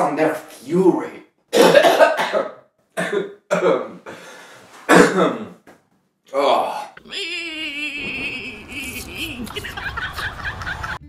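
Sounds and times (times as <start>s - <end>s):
person coughing: 1.6s - 4.0s, 4.9s - 5.5s.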